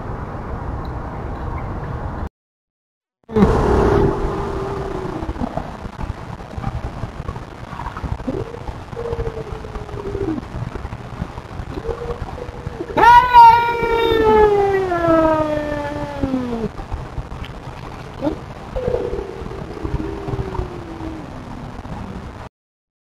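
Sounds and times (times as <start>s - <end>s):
loud long wailing yowl: 3.3s - 5.8s, 11.8s - 16.7s, 18.8s - 21.8s
cats yowling: 8.3s - 10.5s, 11.8s - 16.8s, 18.2s - 21.7s.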